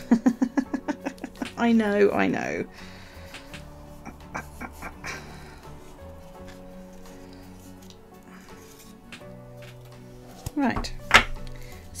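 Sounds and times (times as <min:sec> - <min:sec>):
soft background music chords: 0:00.0 - 0:12.0.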